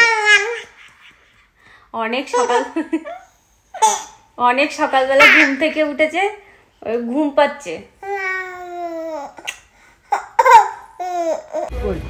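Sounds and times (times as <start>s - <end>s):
toddler girl laughing: 0.0s - 1.4s.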